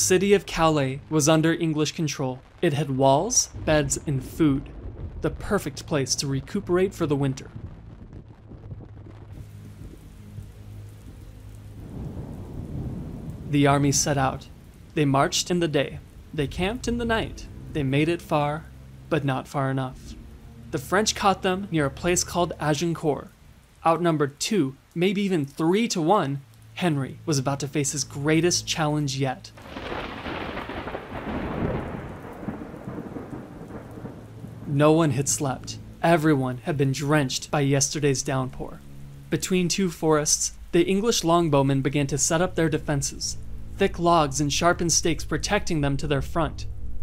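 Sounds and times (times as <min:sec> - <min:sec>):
steady rain: 0:00.0 - 0:47.0
low rumbling thunder: 0:02.4 - 0:19.1, 0:29.6 - 0:36.0, 0:40.4 - 0:47.0.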